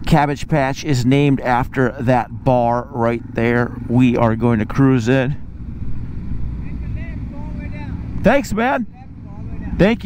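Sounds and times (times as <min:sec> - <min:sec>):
motorcycle engine low rumble: 0:00.0 - 0:10.0.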